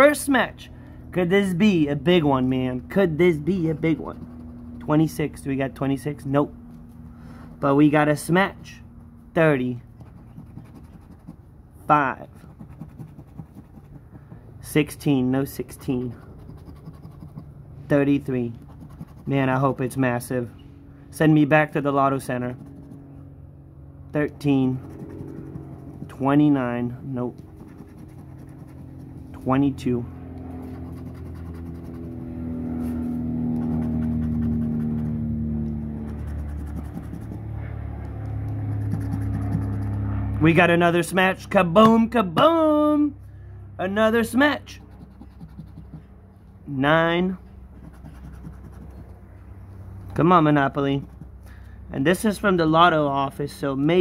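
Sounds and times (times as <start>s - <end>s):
low engine-like hum: 0.0s - 54.0s
scratch card being scratched: 2.8s - 5.2s, 9.8s - 11.5s, 12.2s - 17.5s, 18.2s - 19.7s, 22.2s - 23.1s, 24.6s - 26.5s, 27.3s - 29.5s, 30.6s - 40.1s, 44.7s - 46.1s, 47.7s - 49.2s, 50.9s - 51.4s.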